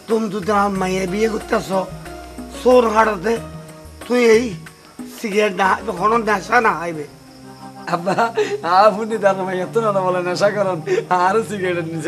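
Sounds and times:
man speaking: 0:00.0 - 0:01.9, 0:02.5 - 0:07.1, 0:07.9 - 0:12.0
background music chord: 0:00.0 - 0:12.0
crickets chirping: 0:00.0 - 0:12.0.

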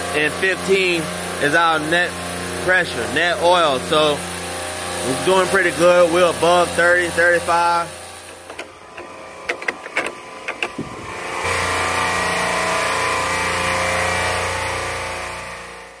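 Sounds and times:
loud drone with hiss: 0:00.0 - 0:09.4, 0:10.8 - 0:16.0
sharp mechanical clicks: 0:08.3 - 0:10.9.

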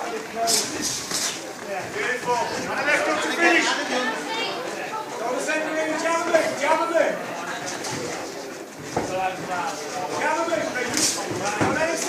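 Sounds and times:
murmur of spectators' voices: 0:00.0 - 0:12.0
people talking: 0:00.0 - 0:12.0.

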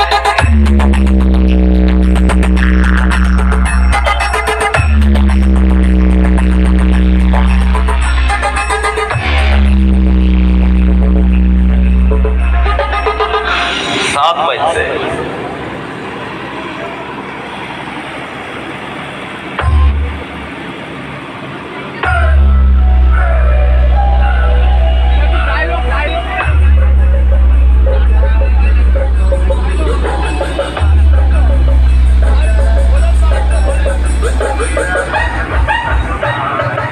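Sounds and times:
bass-heavy electronic dance music: 0:00.0 - 0:15.4, 0:19.5 - 0:20.8, 0:21.5 - 0:36.9.

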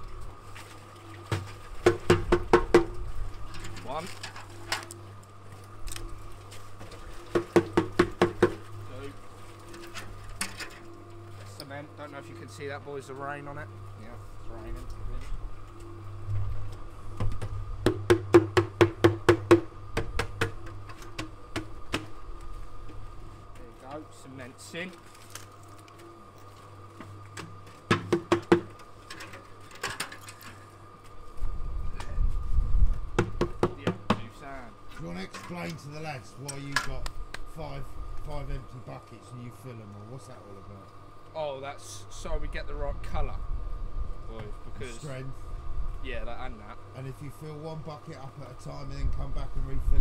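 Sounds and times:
steady low hum: 0:00.0 - 0:50.0
metal bucket knocking on drum: 0:17.9 - 0:20.6, 0:27.9 - 0:28.7.

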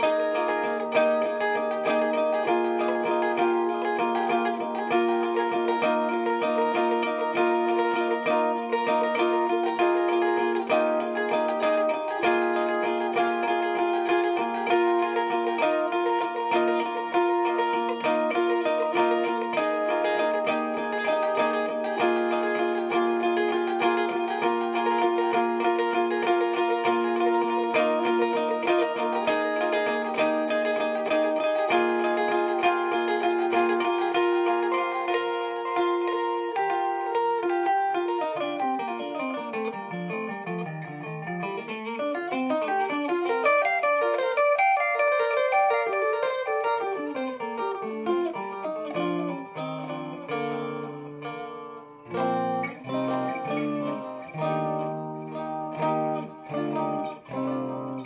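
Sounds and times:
electric guitar with delay: 0:00.0 - 0:58.0.

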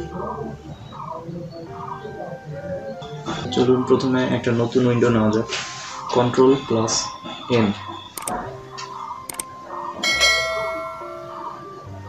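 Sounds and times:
mouse clicks: 0:08.2 - 0:08.4, 0:09.3 - 0:09.5
notification bell ringing: 0:10.0 - 0:11.4.

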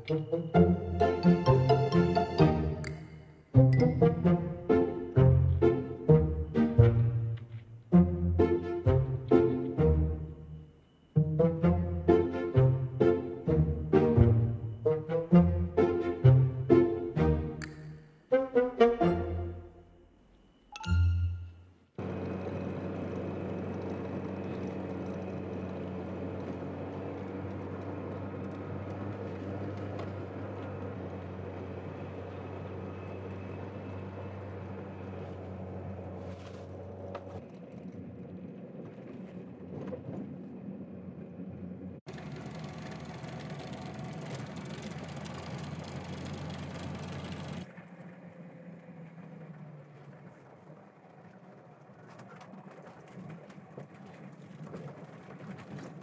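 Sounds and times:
car engine driving on dirt track: 0:22.0 - 0:56.0.

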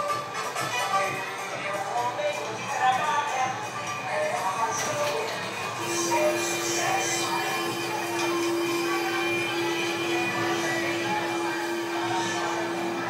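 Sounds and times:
steady tone: 0:05.6 - 0:13.0.

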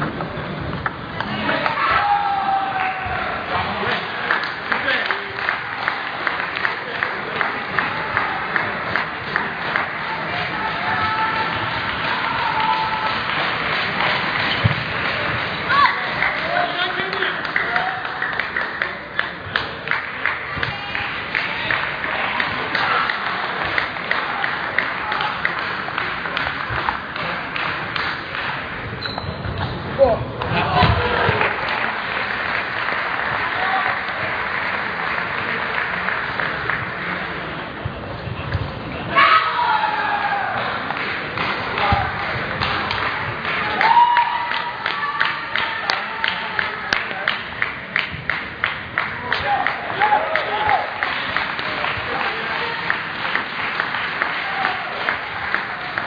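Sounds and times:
murmur of voices: 0:00.0 - 0:56.0
loud shouts: 0:01.3 - 0:03.6, 0:10.1 - 0:13.3, 0:15.6 - 0:18.1, 0:39.1 - 0:40.8, 0:43.6 - 0:46.6, 0:49.4 - 0:51.0.

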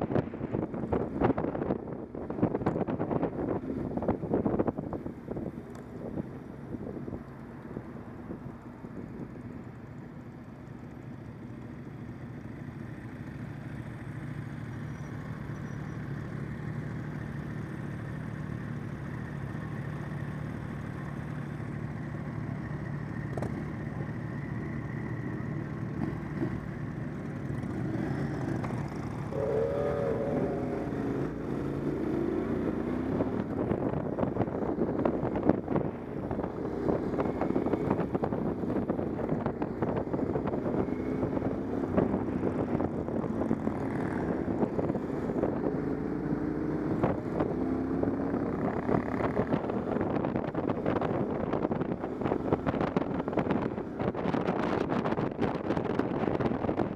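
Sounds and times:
motorcycle engine running: 0:00.0 - 0:56.9.

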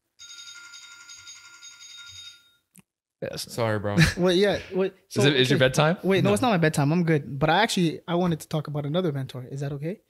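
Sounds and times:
person talking: 0:03.3 - 0:10.0.

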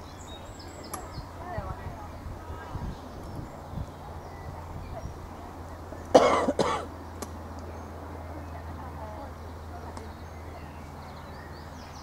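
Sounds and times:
person coughing: 0:06.2 - 0:06.9.

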